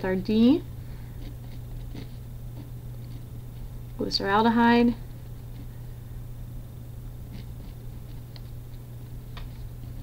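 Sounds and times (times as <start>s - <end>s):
low electrical hum: 0.0s - 10.0s
pen scratching on paper: 1.2s - 3.7s.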